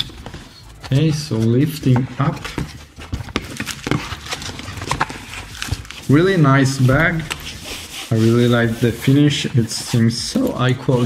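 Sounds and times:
fabric bag rustling: 0.0s - 11.0s.

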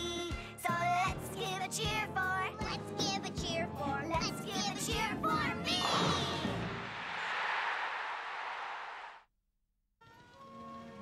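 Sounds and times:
crowd cheering and applauding: 6.8s - 9.2s.

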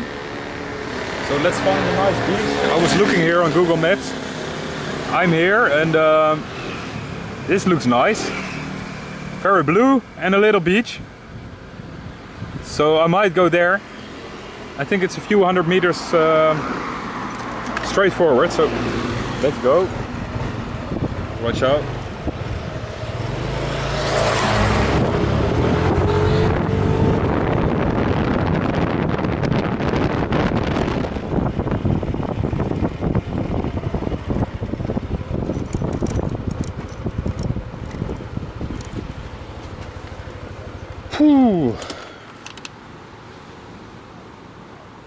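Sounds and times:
wind rushing over microphone: 10.9s - 13.0s, 16.6s - 40.6s
scooter engine revving: 22.7s - 27.7s.

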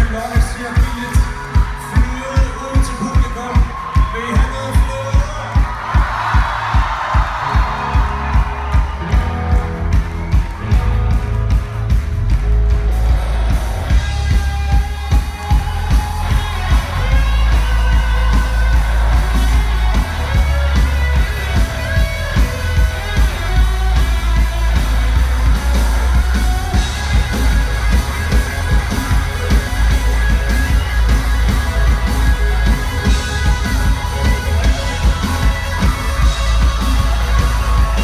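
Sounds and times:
drum beat: 0.0s - 38.0s
electric guitars: 0.0s - 38.0s
heavy bass: 0.0s - 38.0s.

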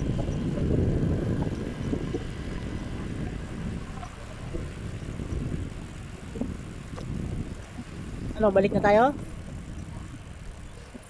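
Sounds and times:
bicycle tyres on asphalt: 0.0s - 11.0s
wind on microphone: 0.0s - 11.0s.

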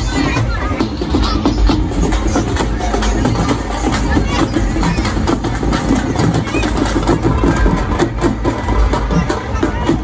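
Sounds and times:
large drums beaten fast: 0.0s - 10.0s
noisy crowd: 0.0s - 10.0s.

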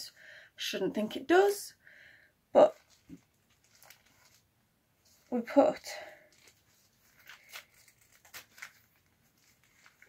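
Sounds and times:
fabric rustling: 2.6s - 10.0s
plastic pouch scraping: 2.7s - 10.0s.

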